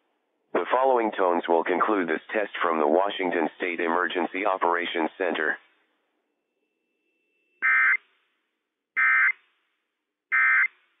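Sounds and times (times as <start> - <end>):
short buzzing data bursts: 9.0 - 9.4.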